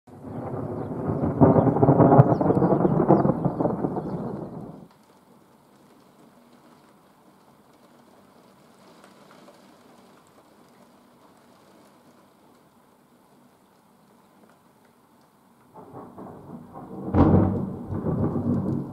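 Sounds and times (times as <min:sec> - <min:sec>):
thunder rumbling: 0:00.1 - 0:04.9, 0:15.8 - 0:18.9
faint rain: 0:00.1 - 0:18.9.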